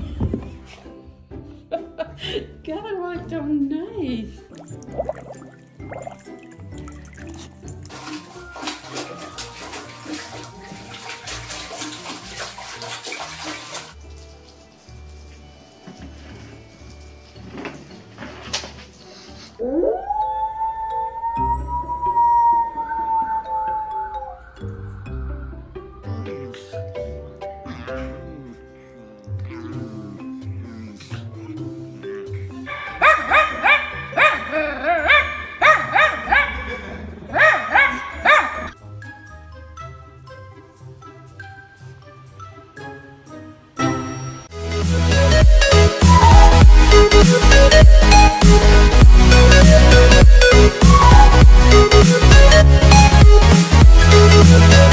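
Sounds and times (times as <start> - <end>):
background music: 0.0 - 54.9
water splashing in toilet bowl: 4.5 - 15.0
small dog barking: 32.7 - 34.5, 35.1 - 36.6, 37.3 - 38.7
background music with bass beat: 44.6 - 54.9.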